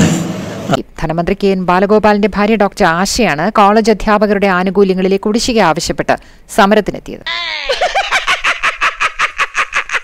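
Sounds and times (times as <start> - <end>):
man cackling laugh: 7.3 - 10.0.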